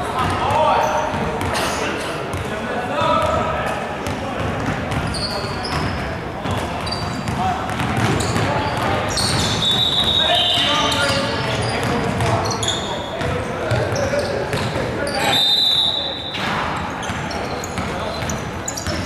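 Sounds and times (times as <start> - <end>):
players' voices: 0.0 - 19.0
basketball bouncing on court: 3.2 - 14.9, 16.4 - 19.0
high-pitched shoe squeaks: 15.1 - 19.0.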